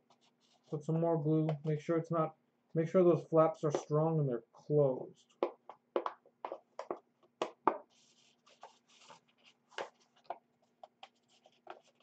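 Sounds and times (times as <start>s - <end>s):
paper rustling: 7.9s - 12.0s.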